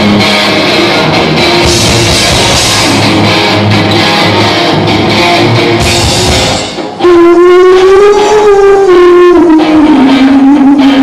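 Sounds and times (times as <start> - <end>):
live rock band: 0.0 - 11.0
long held wavering note: 7.0 - 10.7.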